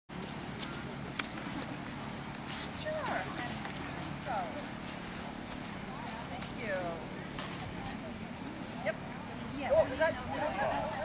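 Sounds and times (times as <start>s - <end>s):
background chatter: 1.5s - 11.0s.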